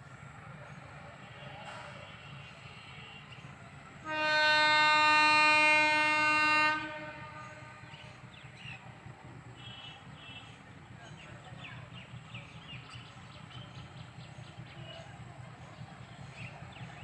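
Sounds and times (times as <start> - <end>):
locomotive horn blast: 4.0 - 8.3.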